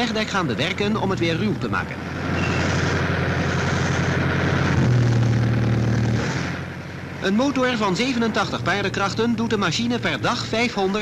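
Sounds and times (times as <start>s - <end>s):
machine engine hum: 0.0s - 11.0s.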